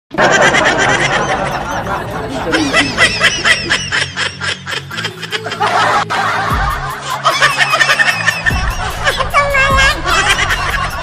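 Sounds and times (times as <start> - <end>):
snickering laughter: 0.1 - 11.0
background music with bass line: 0.7 - 11.0.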